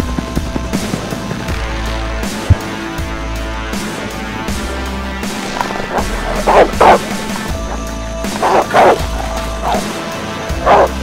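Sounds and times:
background music with low pulse: 0.0s - 11.0s
dog barking: 5.4s - 11.0s.

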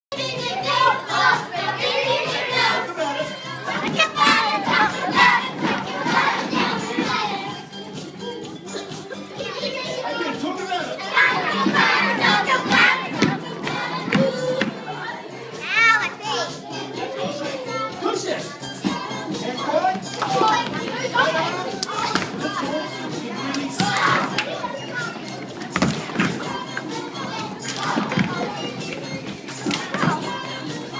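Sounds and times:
children shouting: 0.1s - 7.6s, 8.7s - 19.5s, 20.1s - 30.9s
dance music: 0.1s - 30.9s.

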